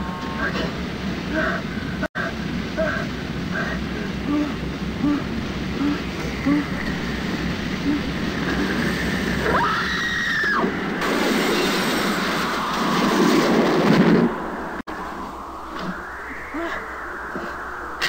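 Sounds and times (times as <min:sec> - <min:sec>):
low rumble: 0:10.7 - 0:18.0.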